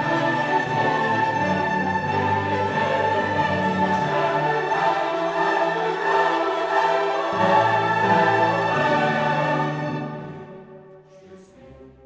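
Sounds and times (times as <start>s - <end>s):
choir singing: 0.0s - 12.0s
orchestra playing held chords: 0.0s - 12.0s.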